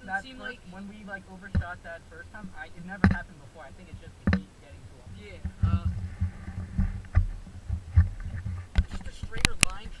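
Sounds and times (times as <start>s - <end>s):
sharp knocks and clicks: 3.0s - 4.5s, 5.3s - 10.0s.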